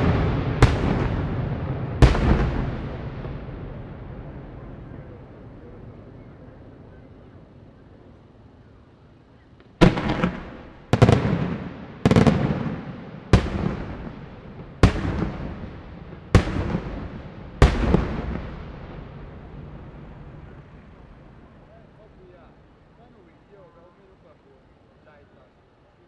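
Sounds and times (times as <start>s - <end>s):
firework shells bursting: 0.0s - 3.8s, 9.6s - 19.2s.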